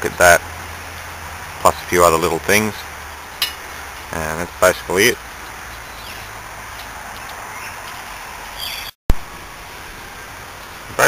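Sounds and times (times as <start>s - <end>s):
low background hum and hiss: 0.0s - 11.0s.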